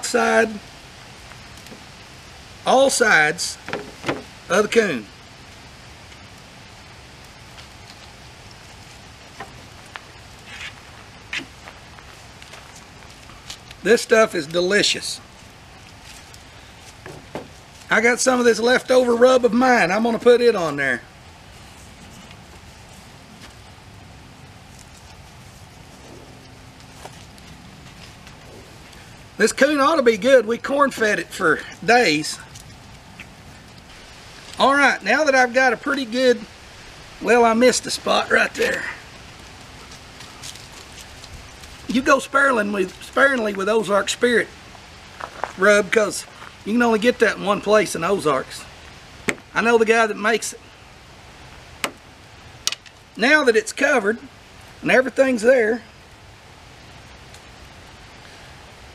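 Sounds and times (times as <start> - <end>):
outdoor background noise: 0.0 - 58.9.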